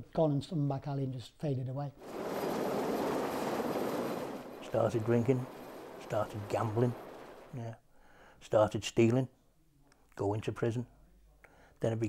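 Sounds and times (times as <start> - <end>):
helicopter rotor and engine noise: 2.0 - 7.5.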